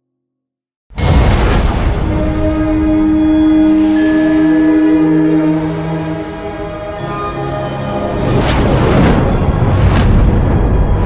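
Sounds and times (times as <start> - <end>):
loud sustained music chord: 2.0 - 11.0.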